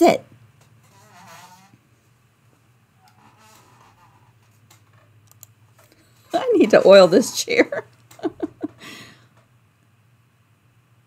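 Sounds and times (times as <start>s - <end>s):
chair squeaking: 0.8s - 1.8s, 3.0s - 5.1s, 6.3s - 7.7s.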